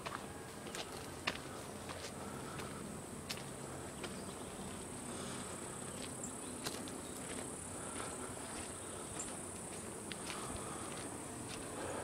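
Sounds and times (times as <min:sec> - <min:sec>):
footsteps on dirt trail: 0:00.0 - 0:12.0.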